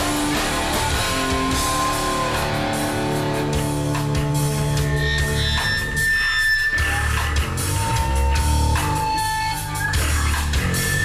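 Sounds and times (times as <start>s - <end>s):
distorted electric guitar: 0.0s - 11.0s
drums: 0.0s - 11.0s.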